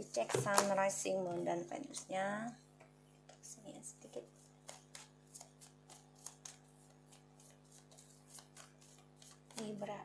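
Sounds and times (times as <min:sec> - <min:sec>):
cards being shuffled: 0:04.1 - 0:09.9.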